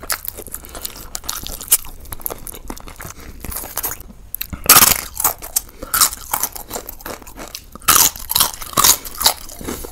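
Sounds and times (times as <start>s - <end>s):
crunchy bites: 0.0s - 9.9s
wet chewing: 0.0s - 9.9s.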